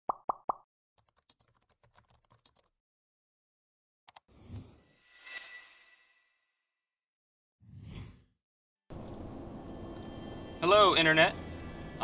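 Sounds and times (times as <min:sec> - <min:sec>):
computer keyboard typing: 0:01.0 - 0:02.7.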